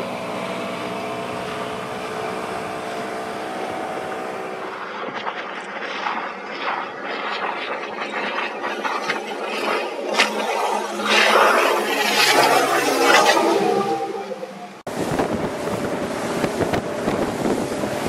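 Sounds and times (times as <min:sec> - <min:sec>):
water splashing against hull: 0:00.0 - 0:14.0, 0:14.8 - 0:18.0
outboard engine running: 0:00.0 - 0:18.0
rushing water: 0:00.0 - 0:18.0.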